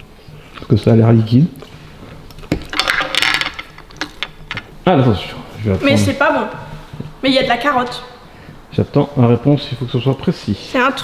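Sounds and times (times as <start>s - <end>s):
small hard objects rattling: 2.5s - 4.6s.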